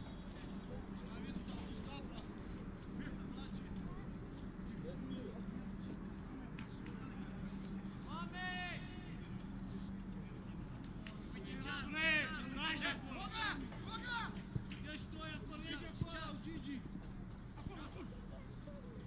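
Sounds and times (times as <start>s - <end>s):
players shouting: 11.4s - 16.8s.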